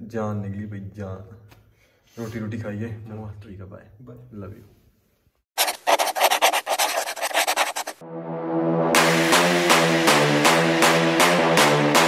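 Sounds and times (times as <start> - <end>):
pencil scribbling on paper: 5.6 - 8.0.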